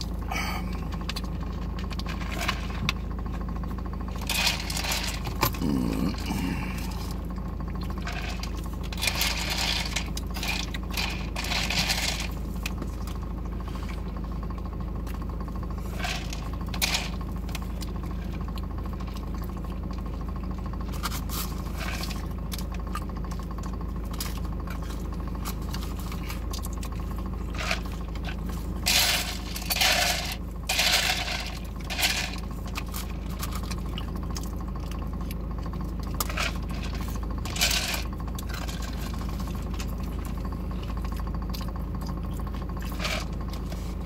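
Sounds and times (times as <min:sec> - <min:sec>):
rustling and handling noise: 0:27.5 - 0:33.8
chewing: 0:38.4 - 0:44.0.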